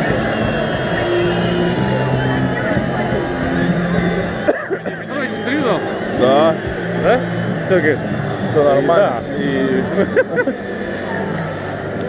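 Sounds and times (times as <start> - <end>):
music playing: 0.0 - 12.0
people talking and calling out: 0.0 - 12.0.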